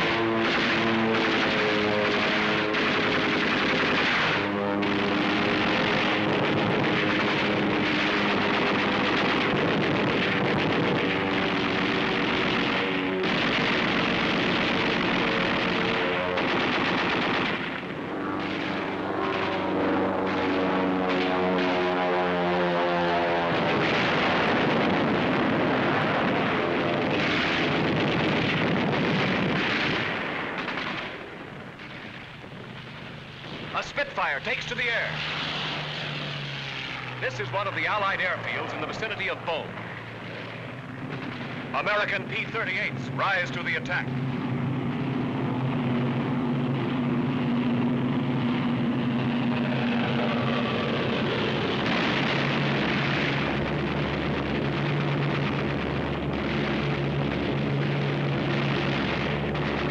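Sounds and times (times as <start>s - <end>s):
rapid machine-gun fire: 0.0s - 20.6s, 27.1s - 31.2s
pitched drone: 0.0s - 59.9s.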